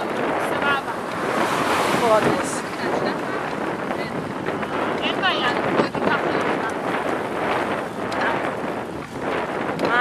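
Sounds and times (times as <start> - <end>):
wind rushing over microphone: 0.0 - 10.0.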